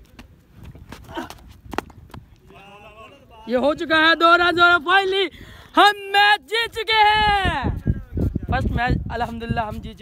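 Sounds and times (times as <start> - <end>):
low wind-like rumble: 0.0 - 10.0.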